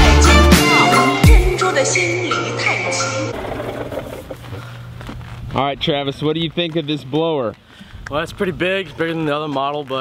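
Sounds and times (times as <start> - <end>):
background music: 0.0 - 3.4.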